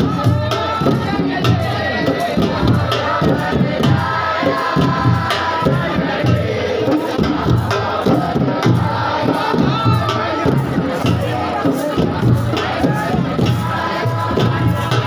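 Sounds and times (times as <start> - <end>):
crowd chanting and shouting: 0.0 - 15.0
steady drumbeat: 0.0 - 15.0.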